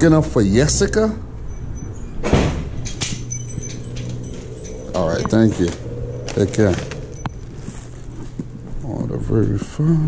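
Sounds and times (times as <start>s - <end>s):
man talking: 5.0s - 6.9s.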